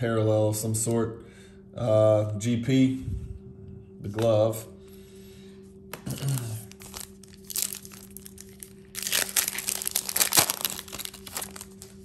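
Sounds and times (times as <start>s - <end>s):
person clearing throat: 6.0s - 6.7s
foil wrapper crinkling and tearing: 6.0s - 12.0s.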